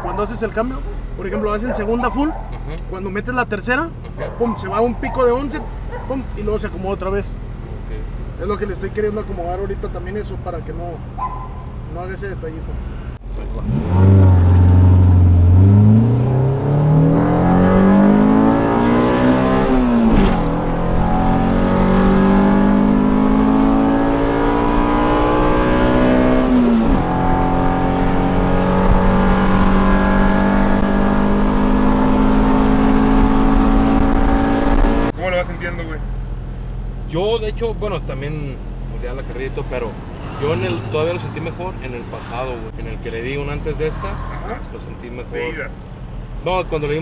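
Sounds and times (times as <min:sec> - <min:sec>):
car engine revving through gears: 0:13.5 - 0:35.2.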